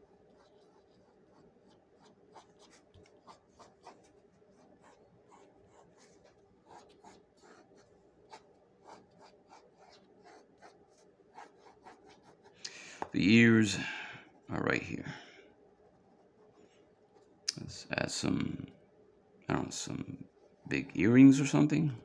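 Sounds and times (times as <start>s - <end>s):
pencil scratching on paper: 0.0s - 12.6s
low steady hum: 0.0s - 22.0s.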